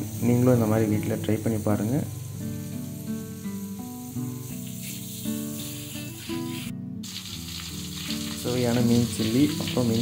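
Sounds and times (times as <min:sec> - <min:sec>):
fish deep-frying in hot oil: 0:00.0 - 0:10.0.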